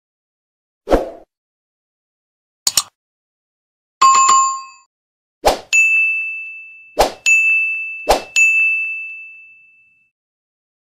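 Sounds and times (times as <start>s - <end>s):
sharp clicks: 2.7s - 2.9s
notification bell chime: 4.0s - 4.9s, 5.8s - 10.1s
ringing ding: 4.0s - 4.9s, 5.8s - 10.1s.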